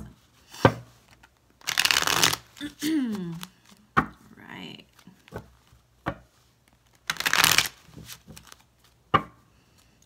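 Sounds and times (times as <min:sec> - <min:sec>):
deck tapping: 0:00.6 - 0:02.4, 0:05.3 - 0:09.4
cards shuffling: 0:00.6 - 0:03.9, 0:04.9 - 0:09.0.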